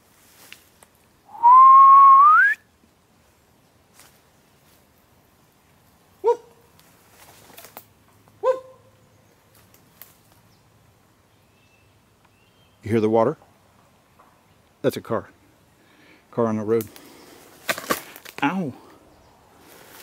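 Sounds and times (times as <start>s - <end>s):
person whistling: 1.3s - 2.6s.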